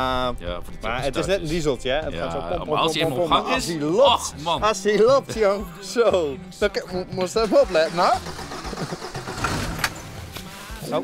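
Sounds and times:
van engine idling: 7.5 - 10.4.

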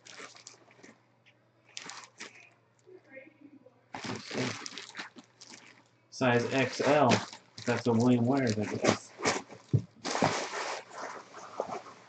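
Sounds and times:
plastic bag crinkling: 0.0 - 1.0, 1.7 - 2.5, 4.0 - 12.0.

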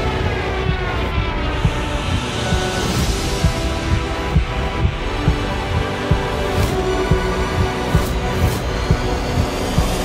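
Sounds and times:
film score with low beat: 0.0 - 10.0.

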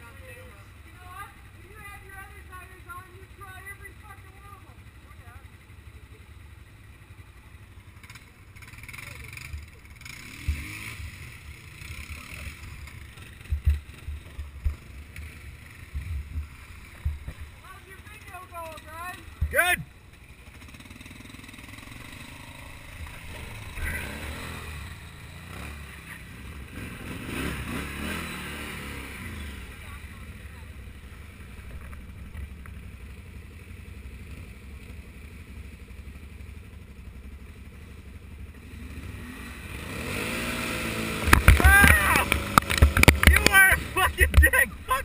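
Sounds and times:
atv engine revving: 0.0 - 45.0.

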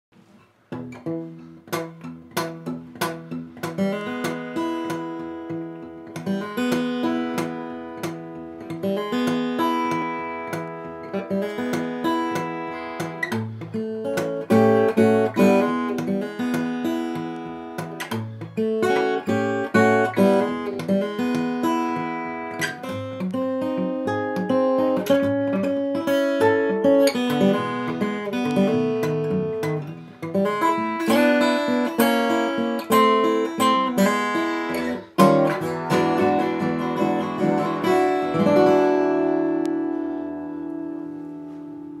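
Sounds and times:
fingerstyle acoustic guitar: 0.1 - 42.0.

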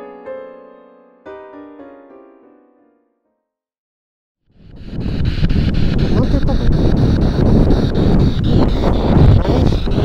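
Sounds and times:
radio static: 4.6 - 10.0
scanner sweep clicking: 4.7 - 10.0
broadcast voice fragments: 6.1 - 6.8.

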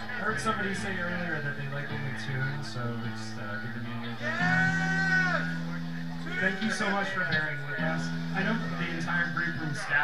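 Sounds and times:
electric guitar tuning notes: 0.0 - 10.0.

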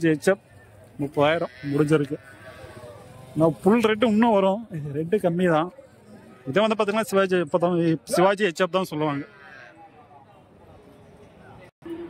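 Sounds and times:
livestock bleating: 1.2 - 3.1, 9.0 - 9.8.

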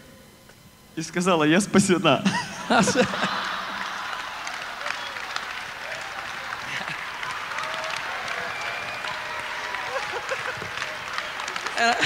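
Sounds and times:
voices: 1.0 - 12.0
laughter: 2.2 - 5.0, 9.7 - 12.0
audience applauding: 2.6 - 12.0.

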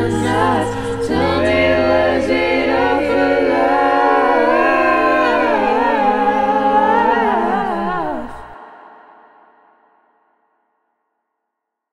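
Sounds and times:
harmonised voices humming: 0.0 - 8.7.

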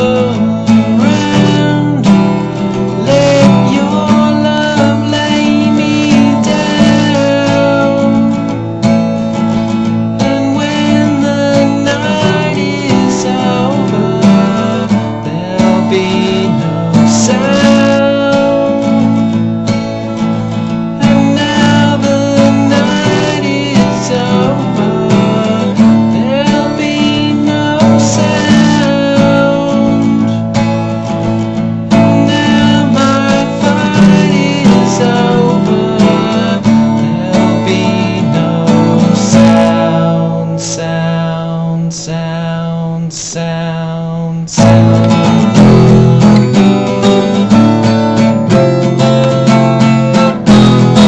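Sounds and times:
acoustic guitar strummed chords: 0.0 - 51.0.

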